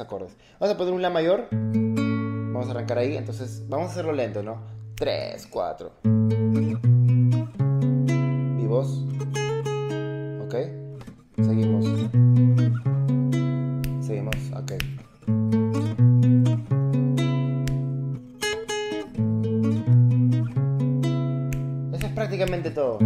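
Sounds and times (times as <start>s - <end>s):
acoustic guitar arpeggios: 1.5s - 5.4s, 6.0s - 23.0s.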